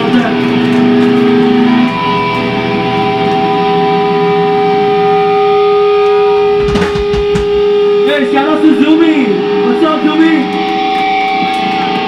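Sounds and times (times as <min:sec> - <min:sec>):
guitar amplifier feedback: 0:00.0 - 0:12.0
low thumps: 0:06.0 - 0:08.0
man speaking through microphone: 0:08.0 - 0:10.5.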